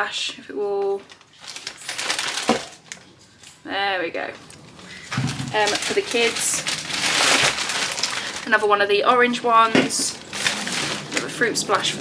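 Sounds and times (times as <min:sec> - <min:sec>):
plastic crinkling: 0:00.8 - 0:03.6, 0:04.4 - 0:12.0.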